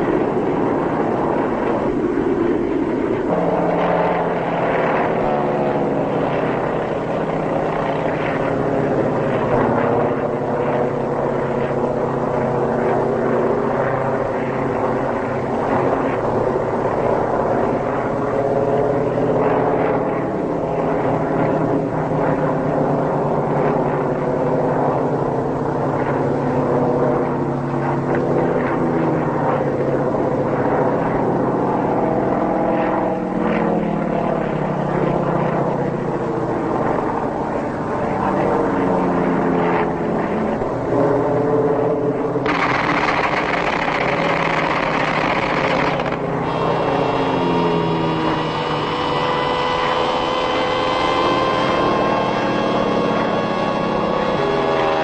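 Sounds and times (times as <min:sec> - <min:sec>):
propeller aircraft engines droning: 0:00.0 - 0:55.0.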